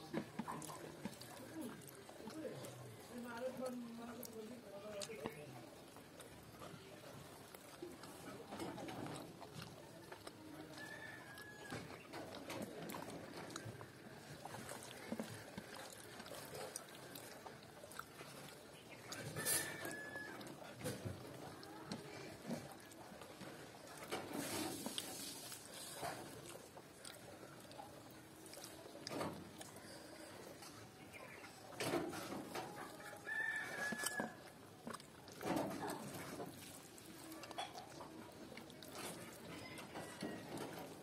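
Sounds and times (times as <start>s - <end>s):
wet chewing and lip smacks: 0.0s - 41.0s
rooster crowing: 19.4s - 20.4s, 33.0s - 34.4s.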